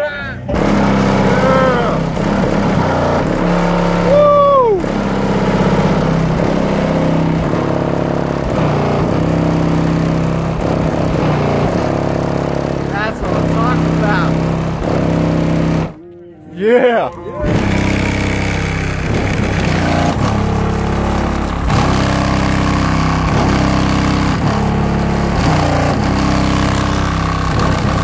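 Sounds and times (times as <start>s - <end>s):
loud bass-heavy music from car: 0.5s - 16.0s, 17.5s - 28.0s.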